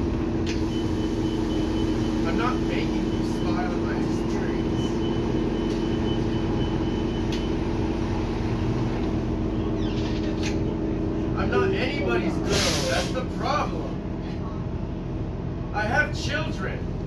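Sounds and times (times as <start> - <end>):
bus engine and road hum: 0.0 - 17.0.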